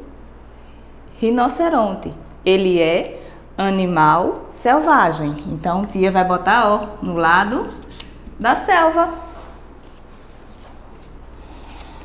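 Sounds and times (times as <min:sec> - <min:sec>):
steady low hum: 0:00.0 - 0:12.0
faint rustling and handling: 0:09.2 - 0:12.0.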